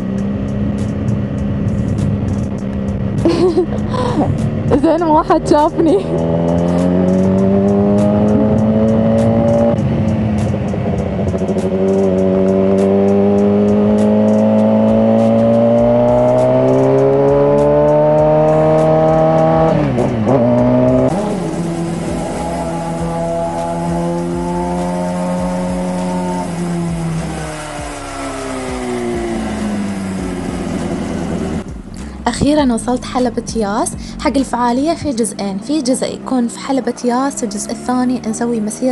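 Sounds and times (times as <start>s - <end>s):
motorcycle engine accelerating: 0.0s - 38.9s.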